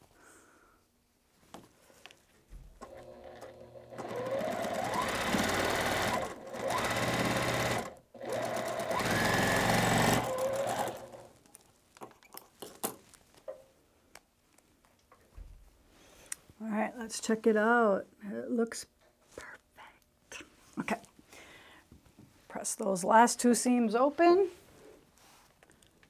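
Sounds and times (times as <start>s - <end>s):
sewing machine whining: 2.8s - 11.3s.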